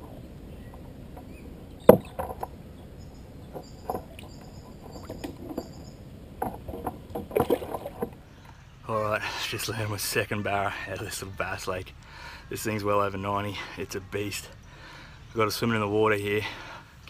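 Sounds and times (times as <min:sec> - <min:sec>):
water splashing against kayak: 0:00.0 - 0:08.4.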